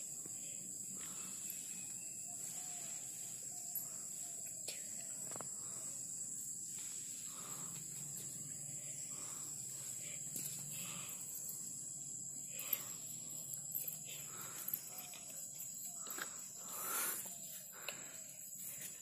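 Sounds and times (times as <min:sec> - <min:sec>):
insect chorus drone: 0:00.0 - 0:19.0.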